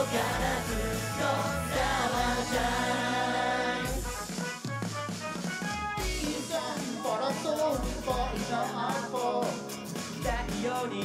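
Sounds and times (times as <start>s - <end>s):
pop song played live: 0.0s - 4.3s, 6.0s - 11.0s.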